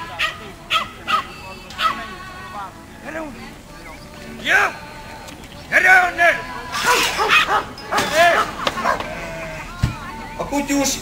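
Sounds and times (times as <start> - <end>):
puppy barking: 0.1 - 2.0, 6.8 - 9.2.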